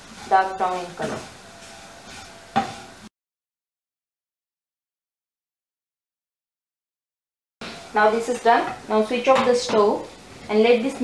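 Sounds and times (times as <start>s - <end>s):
wooden spatula scraping a pan: 0.0s - 3.1s.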